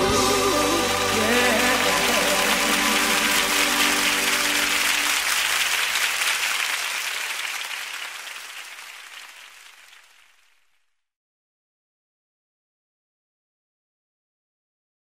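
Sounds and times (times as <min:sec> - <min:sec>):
band's held notes: 0:00.0 - 0:05.3
audience applauding: 0:00.0 - 0:10.7.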